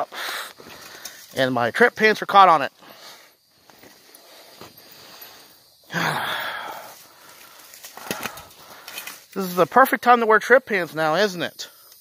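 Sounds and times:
person exhaling breathily: 0.0s - 1.1s, 4.2s - 9.0s.

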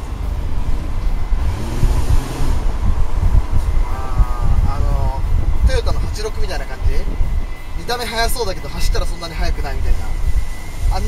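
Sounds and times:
road and engine rumble: 0.0s - 11.0s
wind buffeting microphone: 0.0s - 11.0s
gust of hiss: 0.6s - 11.0s.

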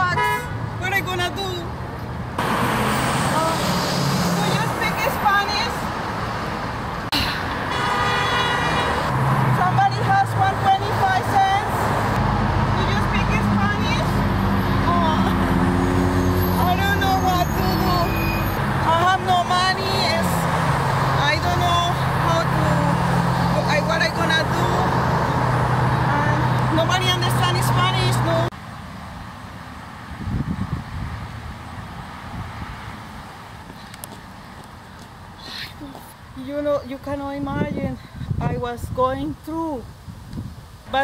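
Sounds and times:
street traffic: 0.0s - 41.0s
bus engine running: 9.1s - 28.5s.

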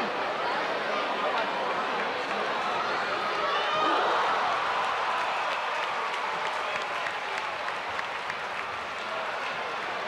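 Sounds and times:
crowd applauding: 4.0s - 10.0s.

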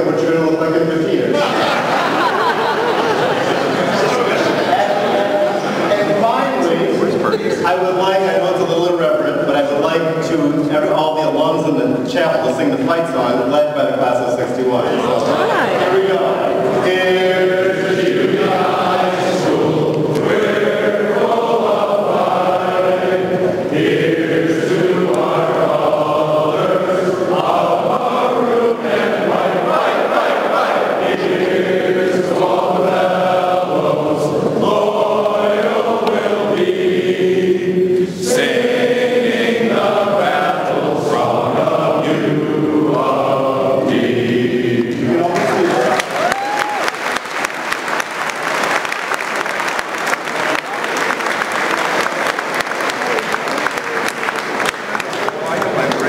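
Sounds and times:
audience applause: 1.4s - 7.4s, 45.2s - 56.0s
men singing in chorus: 14.9s - 45.6s
audience cheering: 45.2s - 56.0s.

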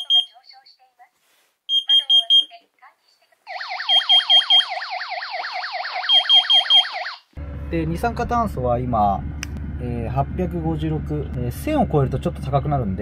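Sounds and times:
high alarm beeps: 0.0s - 0.4s, 1.7s - 2.6s, 3.5s - 7.1s
warbling siren tone: 3.5s - 7.2s.

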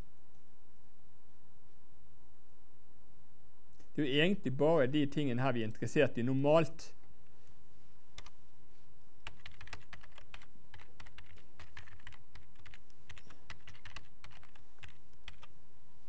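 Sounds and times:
typing on computer keyboard: 9.2s - 15.5s.

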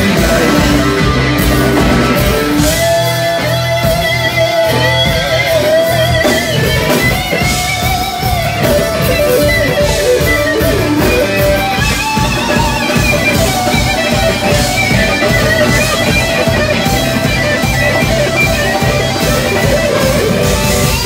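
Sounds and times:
bass guitar: 0.0s - 21.0s
drums: 0.0s - 21.0s
electric guitar lead lines: 0.0s - 21.0s.

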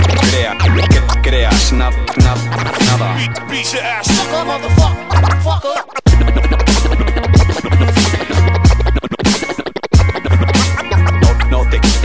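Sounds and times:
hip-hop beat: 0.0s - 12.0s
turntable scratching: 0.0s - 12.0s.

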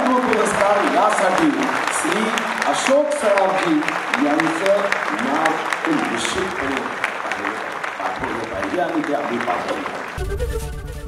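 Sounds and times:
person speaking: 0.0s - 10.0s
audience applauding: 0.0s - 10.7s.

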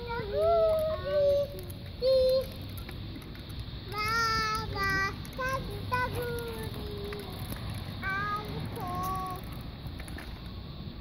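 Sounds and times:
young child singing: 0.0s - 2.6s, 3.9s - 7.4s, 8.0s - 9.5s.

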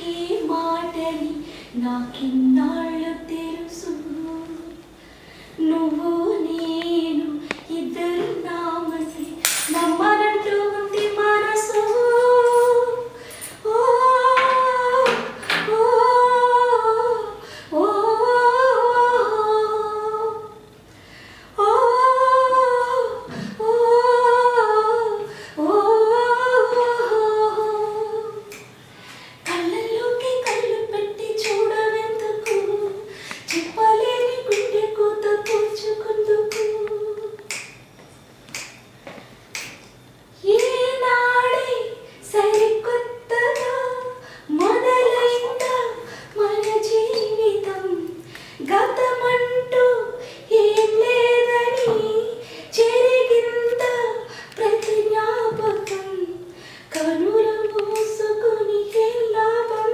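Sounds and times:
woman singing unaccompanied: 0.0s - 4.9s, 5.6s - 20.7s, 21.6s - 28.7s, 29.4s - 37.6s, 40.4s - 59.9s
finger snaps: 28.5s - 28.8s, 31.4s - 34.8s, 35.4s - 35.8s, 36.5s - 40.0s, 40.6s - 40.8s, 43.5s - 43.8s, 46.6s - 49.1s, 53.7s - 55.0s, 55.7s - 56.1s, 56.9s - 58.2s.

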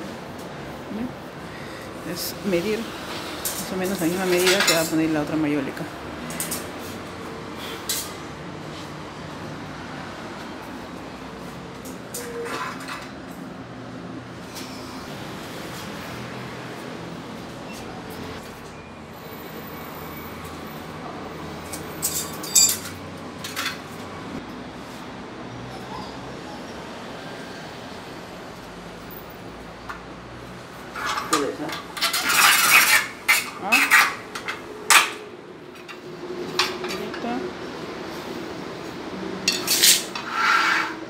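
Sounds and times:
steady background noise: 0.0s - 41.0s.

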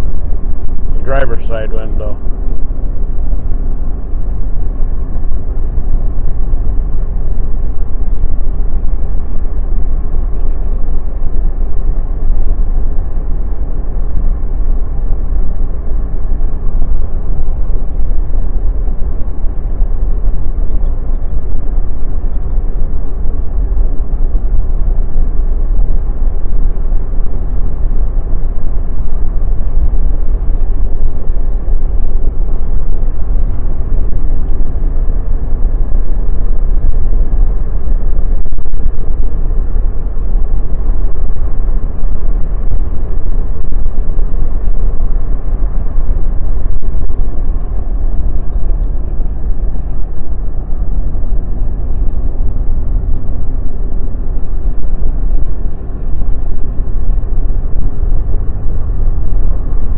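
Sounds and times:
car cabin road rumble: 0.0s - 59.9s.

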